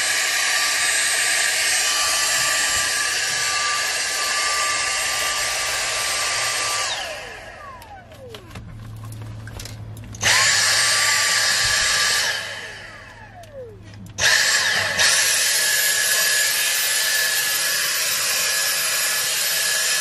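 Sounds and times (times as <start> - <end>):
handheld vacuum running: 0.0 - 20.0
vacuum motor winding down: 0.0 - 20.0.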